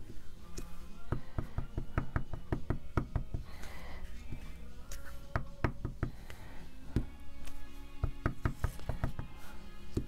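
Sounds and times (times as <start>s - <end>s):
soft background music: 0.0s - 10.0s
stamp knocking on ink pad: 1.1s - 3.4s, 8.0s - 9.3s.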